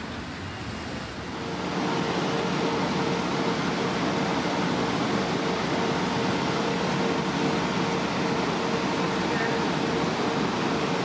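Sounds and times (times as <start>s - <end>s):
passing traffic: 0.0s - 11.0s
mechanical hum with low drone: 1.3s - 11.0s.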